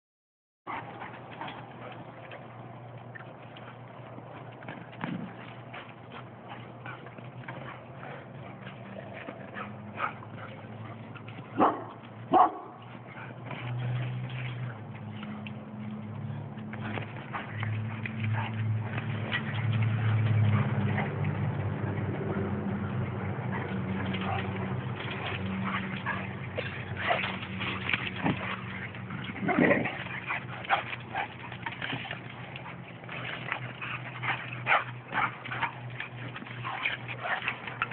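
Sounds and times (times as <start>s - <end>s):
dogs playing: 0.7s - 37.9s
dogs barking: 6.5s - 13.7s, 16.3s - 37.9s.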